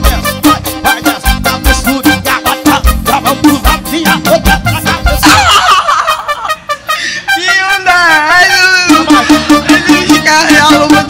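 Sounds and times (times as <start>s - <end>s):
band beat: 0.0s - 11.0s.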